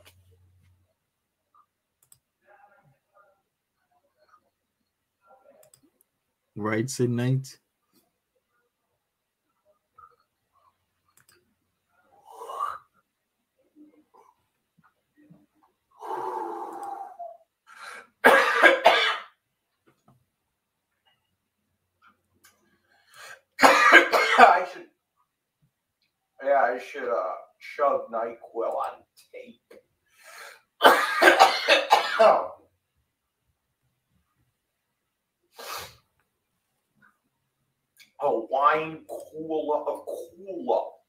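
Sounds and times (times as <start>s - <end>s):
person coughing: 18.2s - 19.4s, 23.6s - 24.6s, 30.8s - 32.6s.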